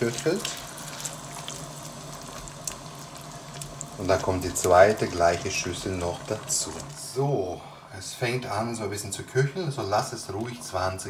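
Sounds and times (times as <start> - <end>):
spatula stirring in a pot: 0.0 - 7.0
extractor hood humming: 0.0 - 7.8.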